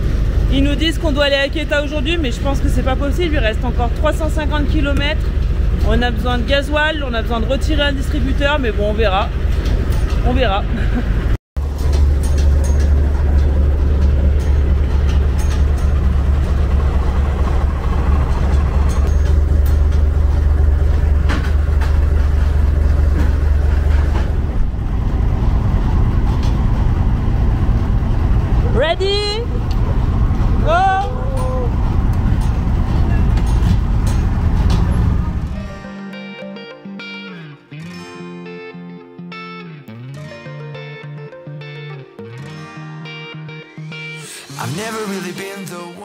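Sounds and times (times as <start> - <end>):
diesel truck engine running: 0.0 - 37.6
person calling out: 30.6 - 31.7.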